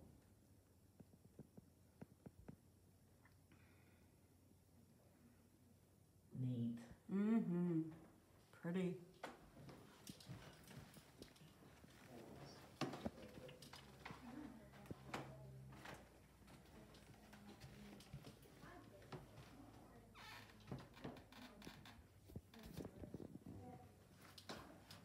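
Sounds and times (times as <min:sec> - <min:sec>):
quiet footsteps: 0:08.0 - 0:25.0.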